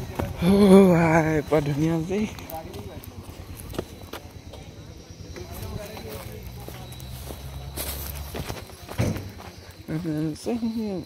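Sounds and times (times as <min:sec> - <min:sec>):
faint voices: 0:00.0 - 0:11.0
footsteps on concrete: 0:03.6 - 0:04.7.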